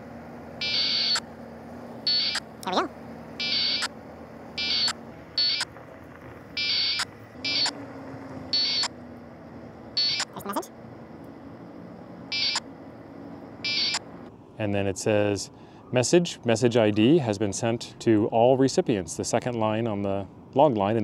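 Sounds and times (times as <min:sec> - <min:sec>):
buzzing digital tones: 0:00.6 - 0:01.2, 0:02.1 - 0:03.9, 0:04.6 - 0:05.7, 0:06.6 - 0:07.8, 0:08.5 - 0:08.9, 0:10.0 - 0:10.7, 0:13.6 - 0:14.0.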